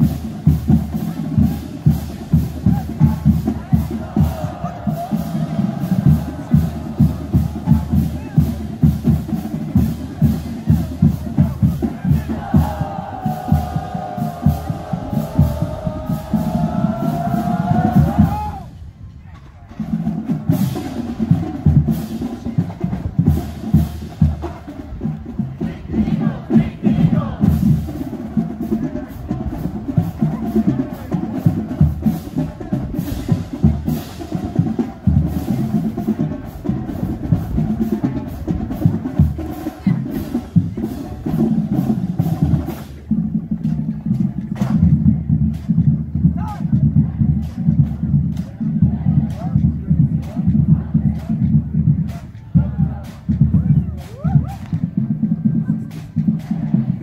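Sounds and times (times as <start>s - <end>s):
marching band long held note: 0.0s - 57.0s
steady drum beats: 0.0s - 57.0s
voices: 0.4s - 57.0s.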